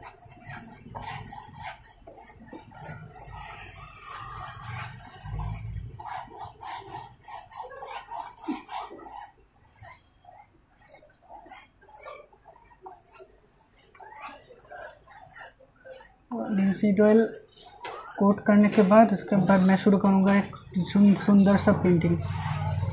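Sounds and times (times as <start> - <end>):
brush swishing on canvas: 0.0 - 22.9.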